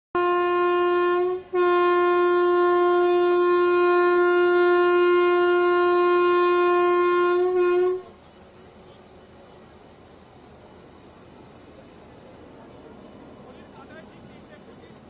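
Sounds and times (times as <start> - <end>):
locomotive horn blasts: 0.2 - 8.2.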